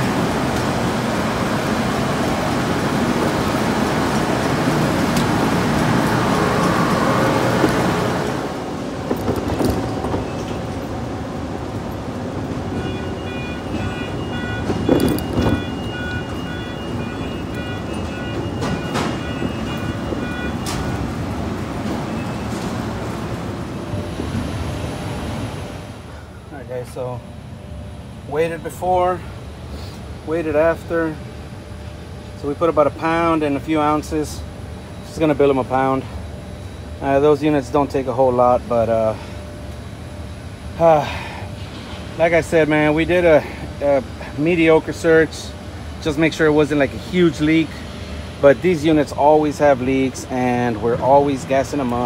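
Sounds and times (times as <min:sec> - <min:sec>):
loud machinery noise: 0:00.0 - 0:52.0
repeating multi-tone electronic beep: 0:12.8 - 0:21.0.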